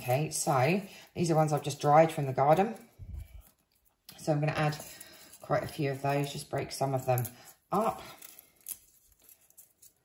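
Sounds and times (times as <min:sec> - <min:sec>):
dried petals crackling: 0:00.0 - 0:10.0.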